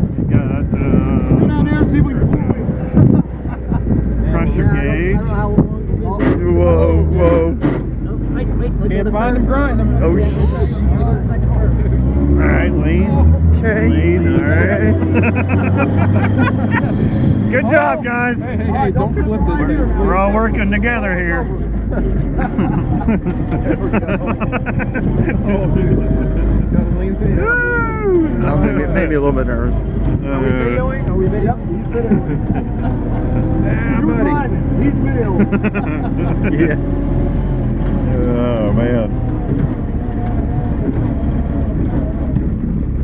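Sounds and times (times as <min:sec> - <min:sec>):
faint voices: 0:00.0 - 0:43.0
jeep engine rumbling: 0:00.0 - 0:43.0
people talking loudly: 0:00.0 - 0:43.0
people laughing: 0:02.6 - 0:04.9, 0:13.8 - 0:20.0, 0:21.6 - 0:29.4, 0:30.3 - 0:37.2.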